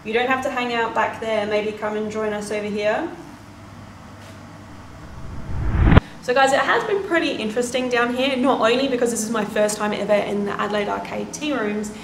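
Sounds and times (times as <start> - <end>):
rising whoosh effect: 4.7 - 6.2.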